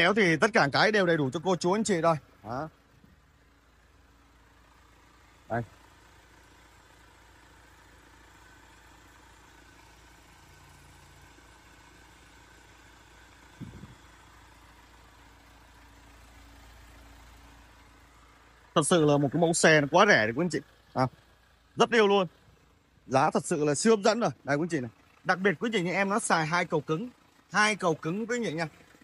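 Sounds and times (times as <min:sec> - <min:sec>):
faint diesel engine idling: 0:00.0 - 0:29.0.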